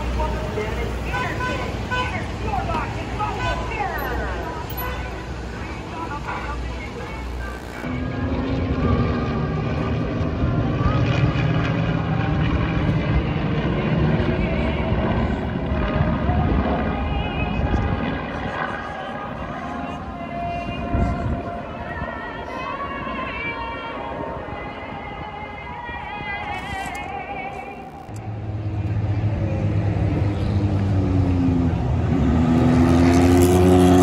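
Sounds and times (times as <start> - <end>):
voices: 0.0 - 8.3, 13.2 - 30.6
aircraft engine rumble overhead: 0.0 - 32.8.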